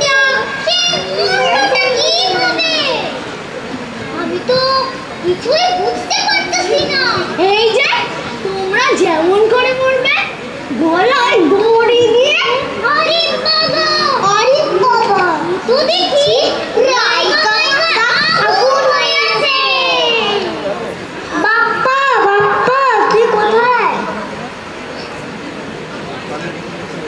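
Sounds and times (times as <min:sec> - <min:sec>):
young children talking: 0:00.0 - 0:27.0.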